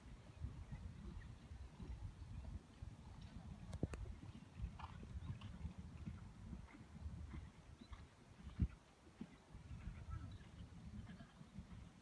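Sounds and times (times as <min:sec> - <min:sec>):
horse hoofbeats on sand: 0:04.1 - 0:11.9.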